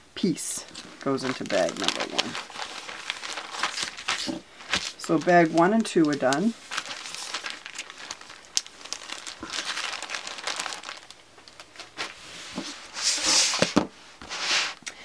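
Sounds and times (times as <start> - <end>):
plastic bags crinkling: 0.6 - 13.9.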